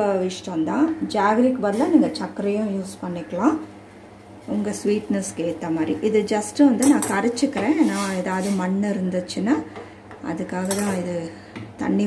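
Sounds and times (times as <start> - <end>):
woman talking: 0.0 - 3.7, 4.5 - 12.0.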